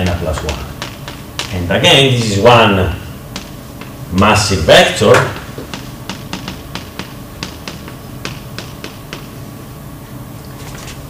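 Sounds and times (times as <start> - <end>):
chalk tapping on blackboard: 0.0 - 2.4, 3.3 - 4.2, 5.1 - 9.4.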